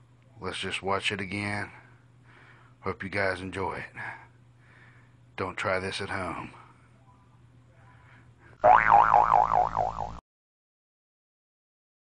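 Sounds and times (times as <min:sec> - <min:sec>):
cartoon boing sound effect: 0:08.6 - 0:10.2.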